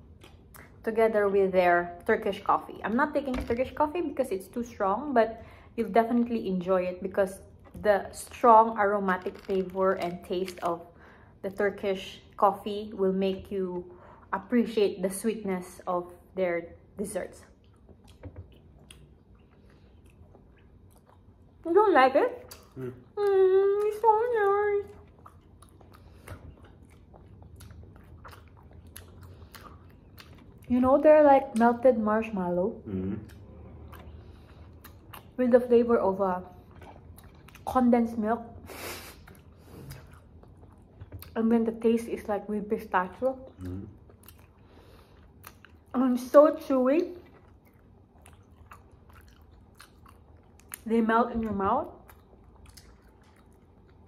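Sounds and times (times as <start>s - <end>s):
person chewing: 0.0s - 0.8s, 17.6s - 21.6s, 22.5s - 30.7s, 32.8s - 35.4s, 36.5s - 37.7s, 38.7s - 41.4s, 43.5s - 45.9s, 47.2s - 50.9s, 52.0s - 54.0s.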